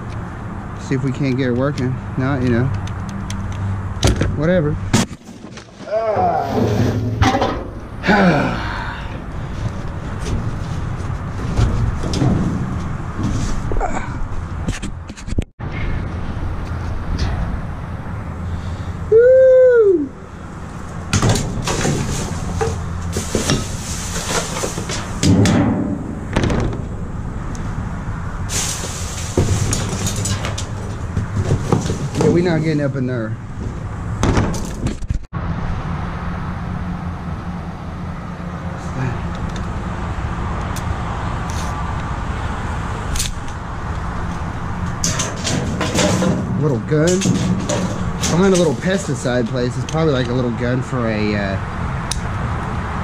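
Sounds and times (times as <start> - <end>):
knocks and scrapes on metal bin: 5.0 - 7.8, 10.0 - 13.7, 21.1 - 27.0, 28.5 - 32.7, 45.0 - 49.4
plastic bags and cardboard rustling: 21.6 - 25.2.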